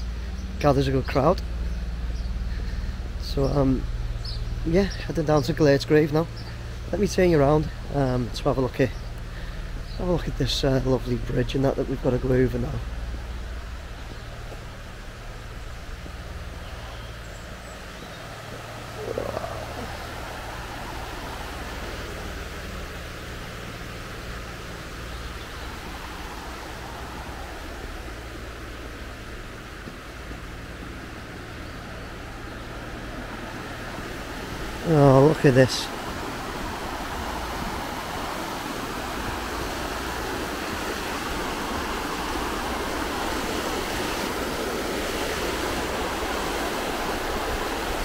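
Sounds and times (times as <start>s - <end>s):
low steady hum: 0.0s - 48.0s
river rushing over stones: 12.8s - 48.0s.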